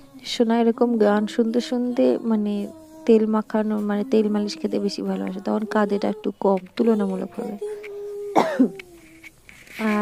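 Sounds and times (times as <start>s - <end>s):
person coughing: 8.3s - 8.8s.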